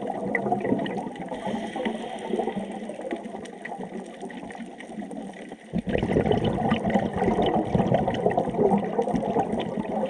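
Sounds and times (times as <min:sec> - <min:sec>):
muffled underwater water wash: 0:00.0 - 0:10.0.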